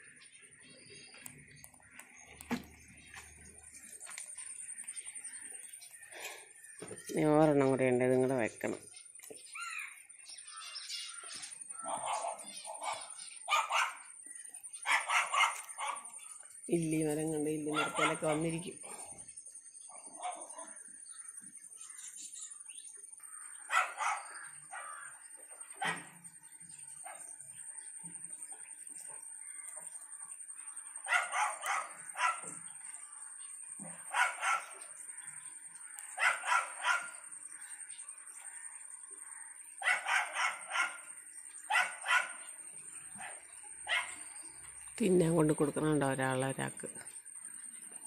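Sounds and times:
animal calls: 9.5s - 14.2s, 14.8s - 16.4s, 17.7s - 18.5s, 23.2s - 26.2s, 31.0s - 33.2s, 33.8s - 37.8s, 39.5s - 44.8s.

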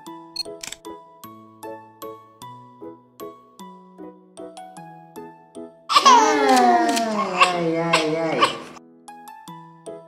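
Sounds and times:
soft background music: 0.0s - 10.0s
baby crying: 5.9s - 8.8s.

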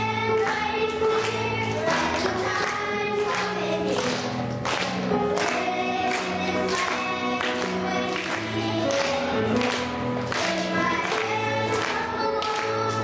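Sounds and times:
choir singing: 0.0s - 4.2s, 5.2s - 13.0s
instrumental accompaniment: 0.0s - 13.0s.

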